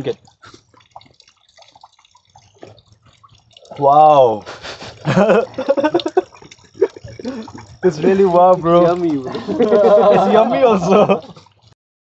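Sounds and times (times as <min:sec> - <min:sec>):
man laughing and exclaiming: 0:05.0 - 0:06.2, 0:06.8 - 0:11.4.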